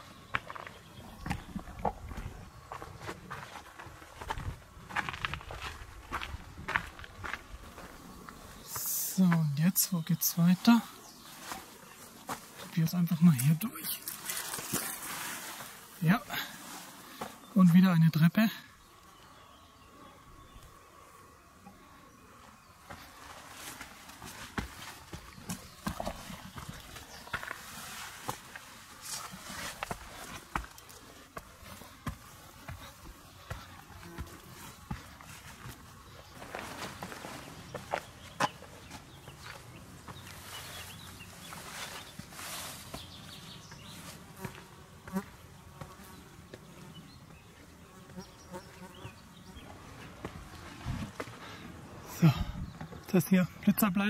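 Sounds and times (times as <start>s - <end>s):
footsteps on stone steps: 0.0s - 9.6s, 10.7s - 12.7s, 22.8s - 48.3s, 50.0s - 51.6s
backpack gear rustling: 14.0s - 15.9s.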